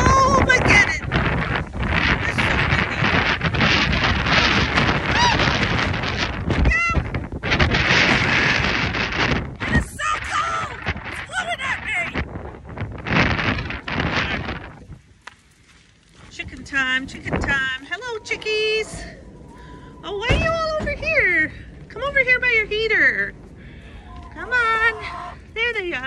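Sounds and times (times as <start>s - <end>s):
wind gusting on microphone: 0.0s - 26.0s.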